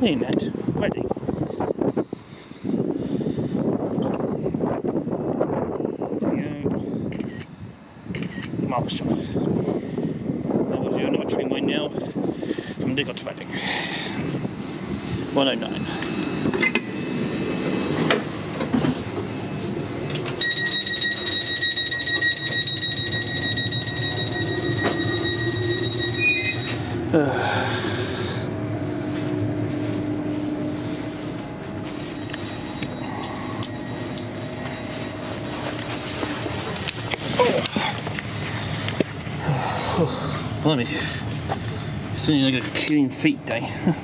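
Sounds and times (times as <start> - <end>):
train hum: 0.0 - 44.0
high-pitched electronic tone: 20.4 - 27.0, 31.8 - 36.4.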